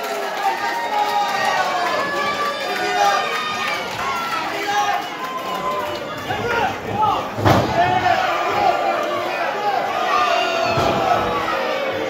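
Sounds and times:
crowd shouting and chattering: 0.0 - 12.0.

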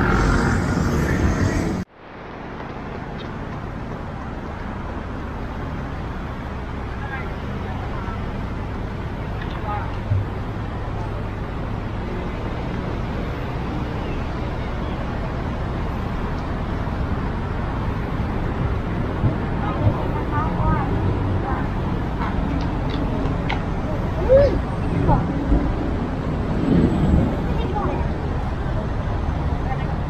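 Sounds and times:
city traffic rumble: 0.0 - 30.0
passers-by talking: 6.8 - 14.3, 18.6 - 30.0.

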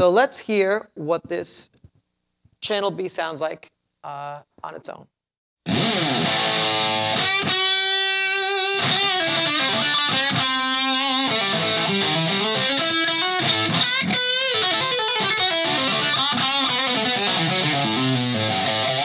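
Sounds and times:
electric guitar through valve amp: 5.7 - 19.0.

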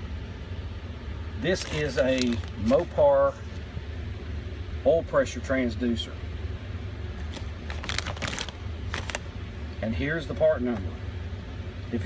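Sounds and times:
steady low hum: 0.0 - 12.0
plastic bag crinkling: 1.5 - 3.0, 7.2 - 9.3.

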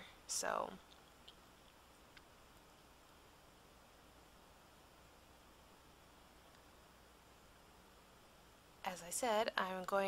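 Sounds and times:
faint room hiss: 0.0 - 10.0
small faint ticks: 0.8 - 2.9.

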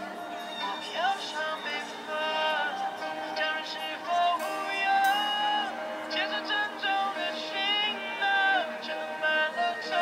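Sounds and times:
pop song over speakers: 0.0 - 10.0.

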